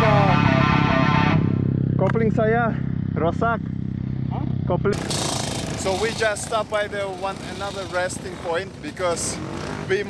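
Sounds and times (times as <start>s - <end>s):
dirt bike engine idling: 0.0s - 10.0s.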